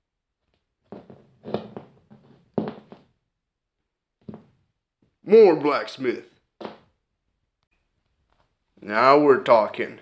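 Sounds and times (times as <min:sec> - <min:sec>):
dumbbell rolling on tabletop: 0:00.9 - 0:03.2.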